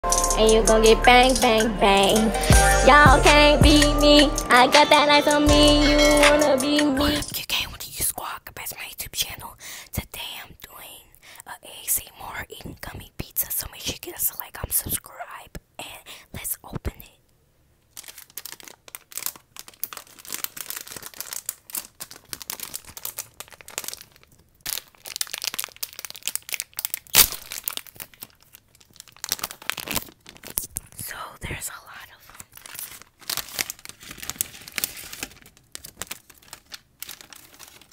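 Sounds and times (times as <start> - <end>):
plastic wrapper crinkling: 17.8 - 37.9.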